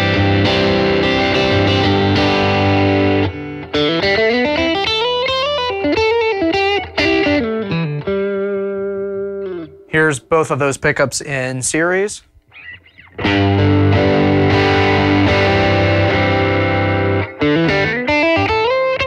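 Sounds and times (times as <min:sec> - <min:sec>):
overdriven electric guitar: 0:00.0 - 0:09.9, 0:12.5 - 0:19.0.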